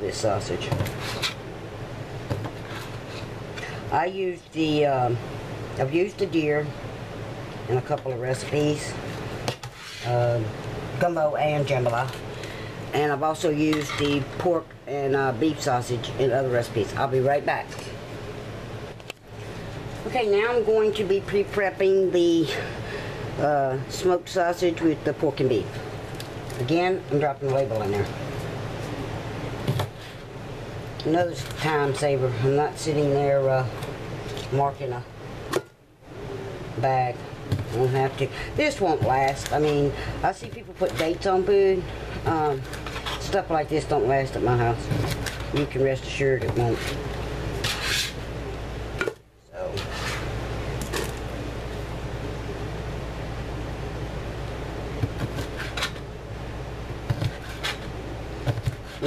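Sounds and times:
low room hum: 0:00.0 - 0:59.0.

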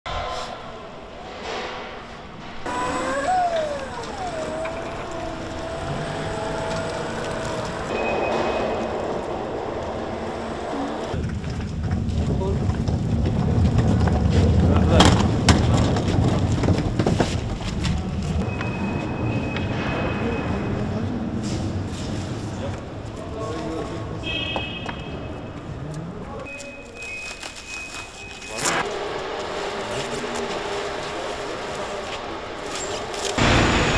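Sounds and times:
forklift motor whine: 0:02.6 - 0:11.2, 0:28.4 - 0:33.9
pallet jack rolling on concrete: 0:02.6 - 0:19.4.

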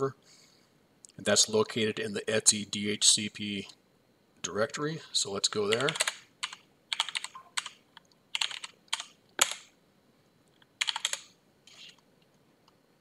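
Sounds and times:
typing on computer keyboard: 0:05.5 - 0:09.7, 0:10.8 - 0:12.0.

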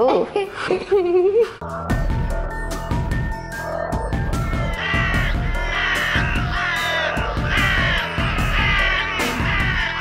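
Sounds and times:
background music with low beat: 0:01.6 - 0:10.0
crow cawing: 0:04.5 - 0:10.0.

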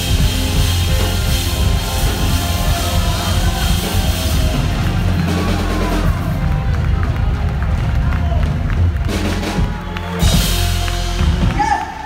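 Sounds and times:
crowd noise: 0:00.0 - 0:12.0
rock band playing loud: 0:00.0 - 0:12.0.

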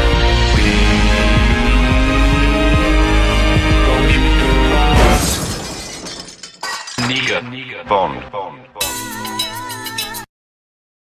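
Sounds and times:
shattering crash sound effect: 0:04.9 - 0:07.4.

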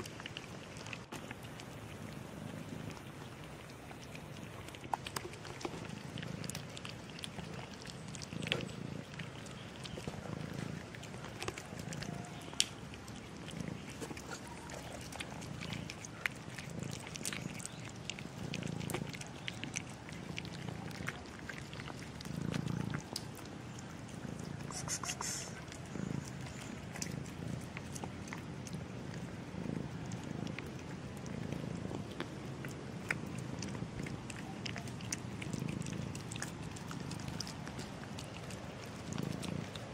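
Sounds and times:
cat purring: 0:00.0 - 0:39.9.

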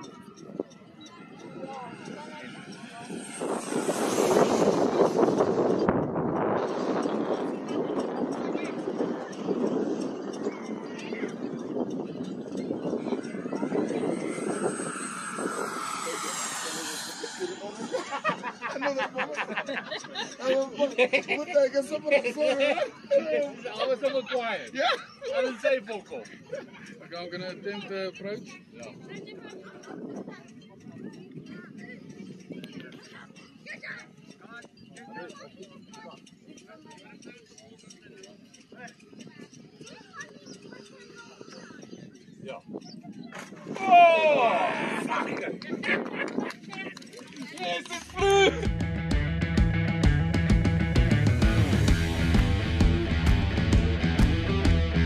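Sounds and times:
quiet indistinct talk: 0:00.0 - 0:48.4
faint voices: 0:00.0 - 0:48.7
model jet fan whine: 0:00.2 - 0:20.1.

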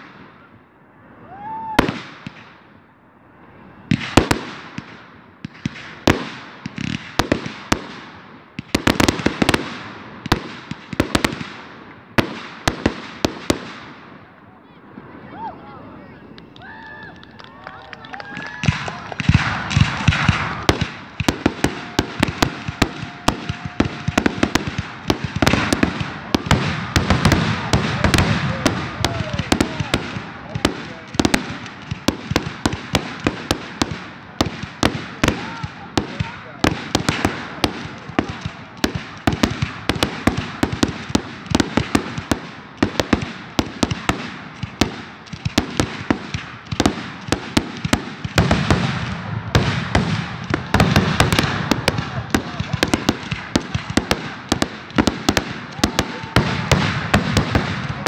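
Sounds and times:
fireworks bangs and crackles: 0:00.0 - 0:58.0.

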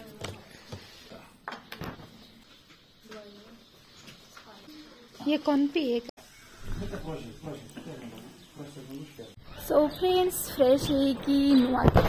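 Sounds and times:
woman speaking: 0:04.5 - 0:06.1, 0:09.6 - 0:11.9.

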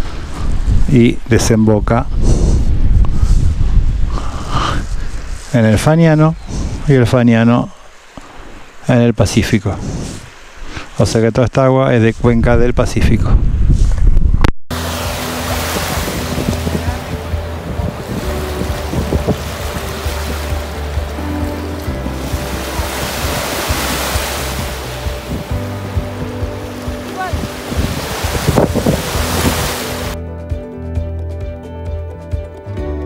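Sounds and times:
wind buffeting microphone: 0:00.0 - 0:05.5, 0:06.4 - 0:07.0, 0:12.1 - 0:30.2
waves washing on pebbly shore: 0:14.7 - 0:30.2
background music: 0:14.7 - 0:33.0.

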